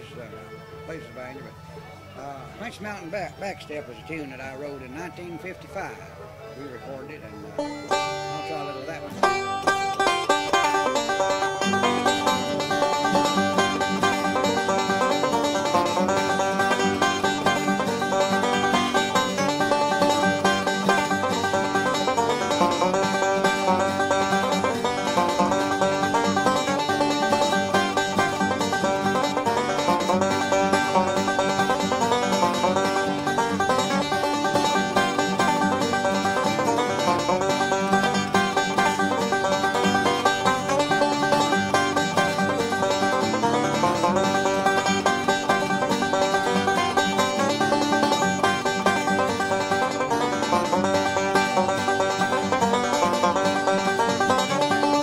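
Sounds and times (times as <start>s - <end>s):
bluegrass banjo picking: 0.0s - 55.0s.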